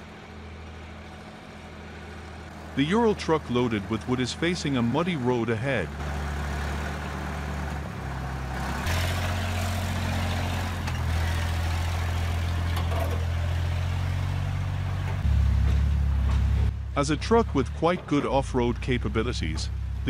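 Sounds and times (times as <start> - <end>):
diesel truck engine under load: 0.0 - 20.0.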